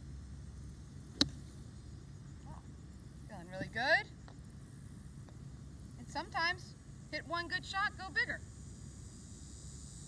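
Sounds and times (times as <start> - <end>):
golf club striking ball: 1.1 - 1.6.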